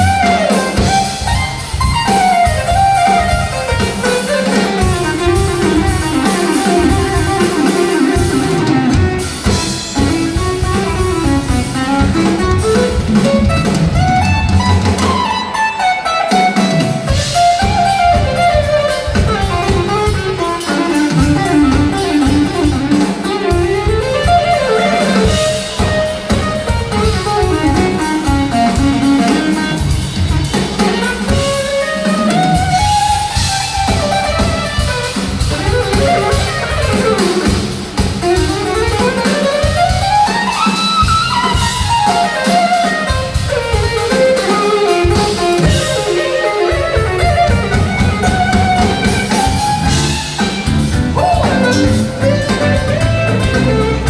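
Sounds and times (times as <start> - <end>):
drum kit: 0.0 - 54.0
electric guitar: 0.0 - 54.0
keyboards: 0.0 - 54.0.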